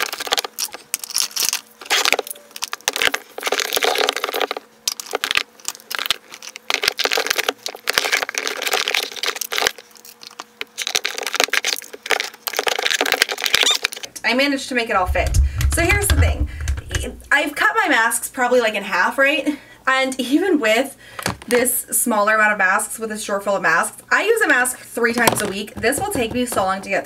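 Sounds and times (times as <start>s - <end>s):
plastic rustling: 0.0s - 14.1s, 25.1s - 27.0s
plastic containers clacking: 15.0s - 17.2s, 25.1s - 27.0s.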